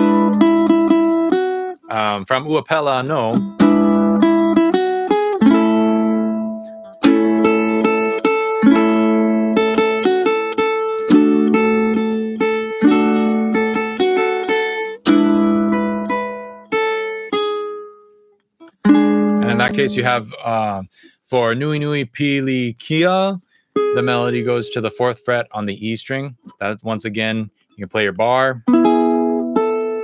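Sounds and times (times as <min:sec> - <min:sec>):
ukulele fingerstyle: 0:00.0 - 0:02.0, 0:03.2 - 0:20.3, 0:23.8 - 0:25.3, 0:28.7 - 0:30.0.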